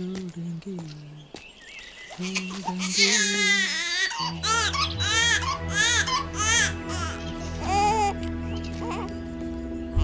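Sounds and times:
infant crying: 2.8 - 8.2, 8.8 - 9.1
low background music: 2.8 - 10.0.

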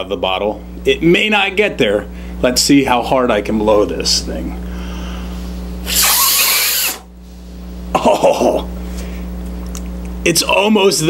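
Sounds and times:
man blowing into glass bottle: 5.8 - 7.1.

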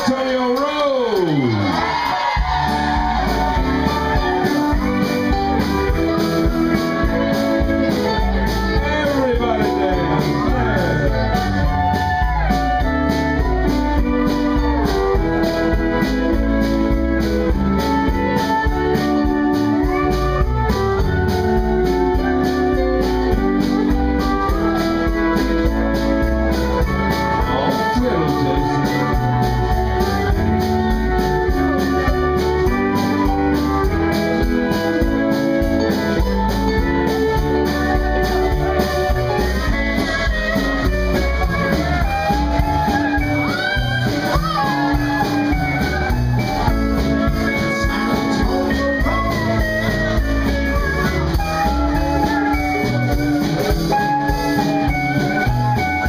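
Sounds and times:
fiddle melody: 0.0 - 56.0
western swing band playing: 0.0 - 56.0.

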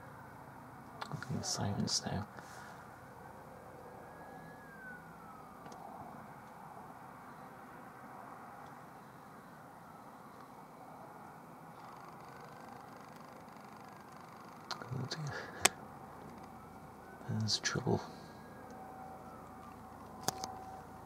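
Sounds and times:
helicopter drone in flight: 0.0 - 21.0
falling whine: 0.9 - 21.0.

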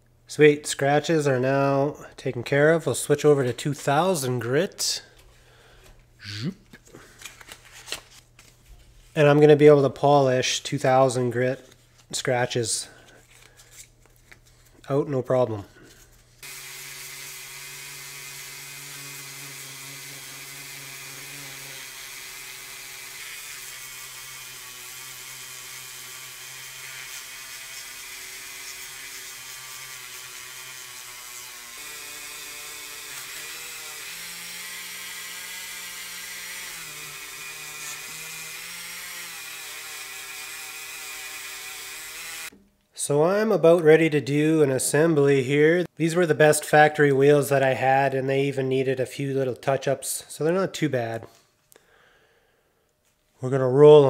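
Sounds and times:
rotary tool motor whine: 16.4 - 42.5.

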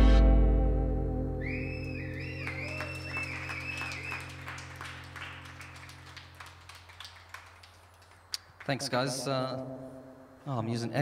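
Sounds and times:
electric guitar and band chord: 0.0 - 1.5
whistles from audience: 1.4 - 4.7
audience clapping: 1.9 - 9.1.

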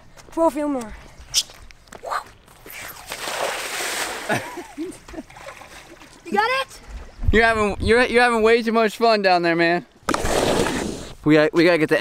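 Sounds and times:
splash into water: 3.0 - 4.6
body sliding down wet concrete: 10.1 - 11.2.

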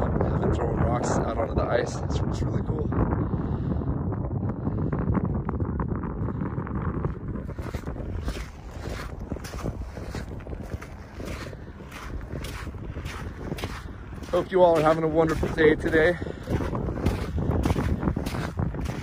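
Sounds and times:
wind buffeting microphone: 0.0 - 19.0
footsteps on sand: 7.1 - 19.0.

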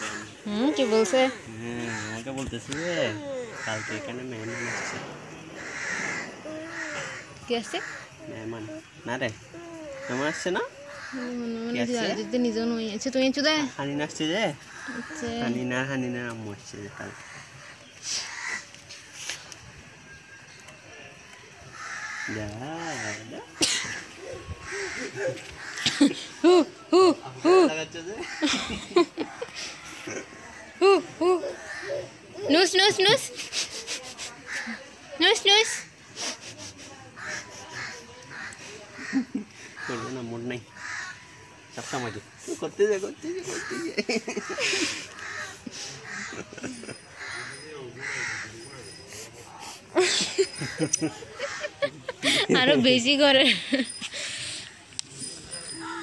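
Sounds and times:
bird calling: 0.0 - 12.4, 37.2 - 52.9.

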